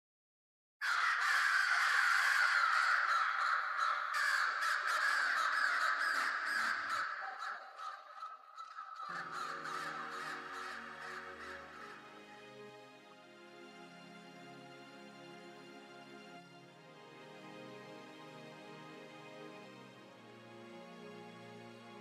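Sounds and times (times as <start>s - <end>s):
many birds cawing: 0.8s - 12.2s
music with held notes: 9.1s - 22.0s.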